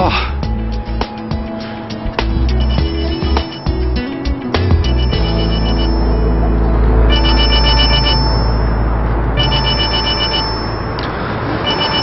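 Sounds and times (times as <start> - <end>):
low rumble: 2.4 - 11.4
phone ringtone: 2.5 - 12.0.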